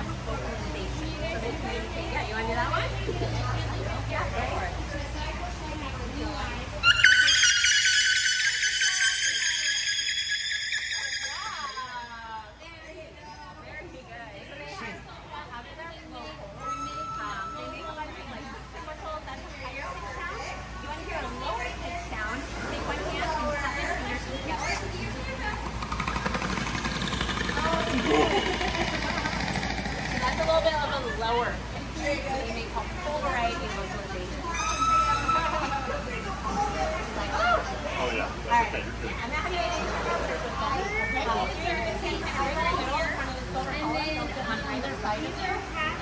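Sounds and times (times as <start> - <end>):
voices talking: 0.0 - 46.0
short high whistle: 6.8 - 12.1
killer whale call: 6.8 - 12.3, 25.4 - 30.7, 34.5 - 36.3
steady mechanical noise: 22.1 - 34.4.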